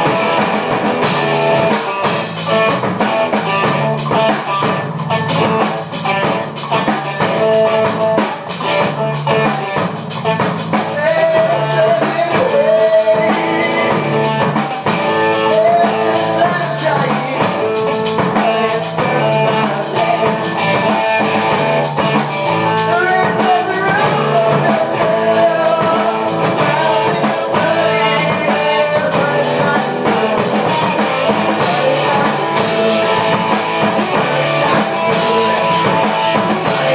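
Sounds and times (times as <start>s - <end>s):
drum kit beat: 0.0s - 36.9s
electric bass: 0.0s - 36.9s
electric guitar: 0.0s - 36.9s.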